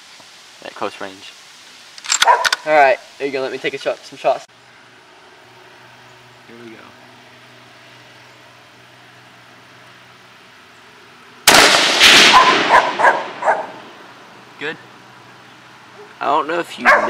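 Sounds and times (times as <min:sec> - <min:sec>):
dog barking: 0:02.2 - 0:02.6, 0:12.3 - 0:13.8, 0:15.9 - 0:16.2, 0:16.8 - 0:17.0
rifle shot: 0:11.4 - 0:13.4.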